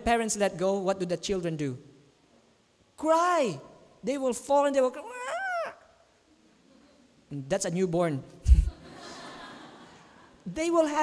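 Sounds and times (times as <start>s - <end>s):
man imitating baby crying: 5.0s - 6.0s.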